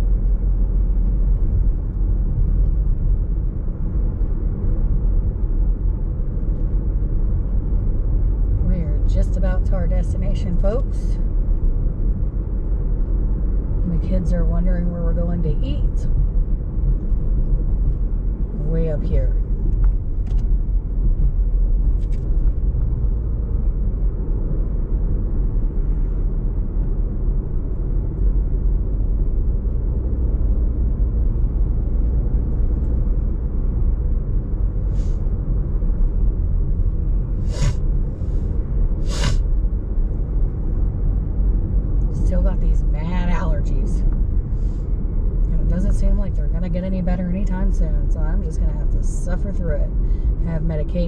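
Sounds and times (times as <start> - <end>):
car road and engine rumble: 0.0 - 51.0
short noises: 37.4 - 37.9, 39.0 - 39.4.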